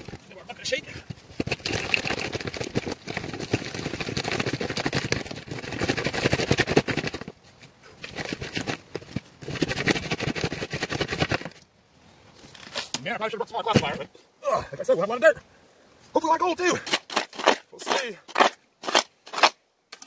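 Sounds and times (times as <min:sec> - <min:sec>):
gravel rattling in a screen: 0:00.0 - 0:11.6.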